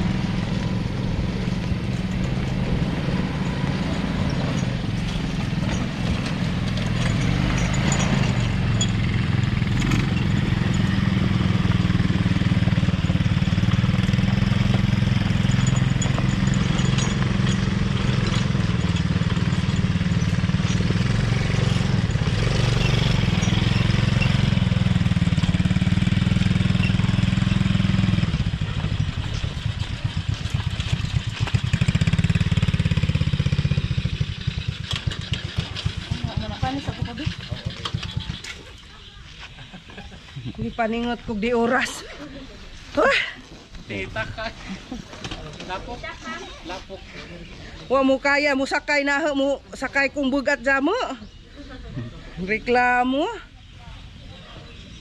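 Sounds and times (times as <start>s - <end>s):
quad bike engine running: 0.0s - 47.0s.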